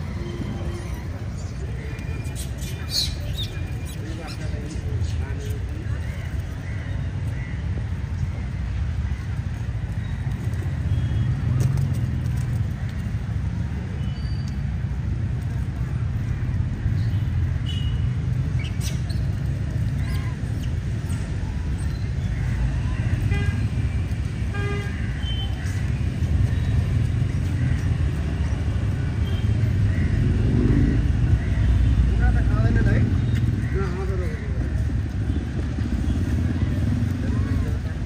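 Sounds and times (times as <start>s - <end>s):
traffic rumble: 0.0s - 38.0s.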